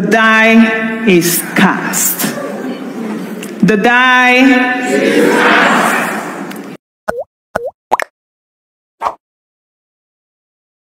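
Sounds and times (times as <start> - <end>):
cartoon bloop pops: 7.1 - 8.1, 9.0 - 9.2.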